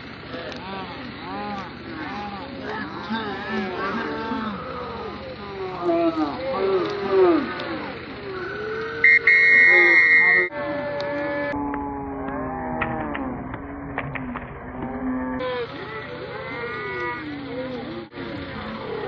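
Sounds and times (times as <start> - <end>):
crowd yelling: 0.0 - 14.1, 14.8 - 19.0
steady high tone: 9.0 - 11.6.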